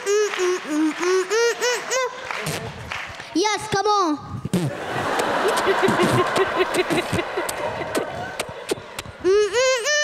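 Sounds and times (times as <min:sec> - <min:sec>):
audience laughing and applauding: 0:00.0 - 0:03.2, 0:04.7 - 0:09.3
person laughing ha-ha: 0:05.5 - 0:10.0.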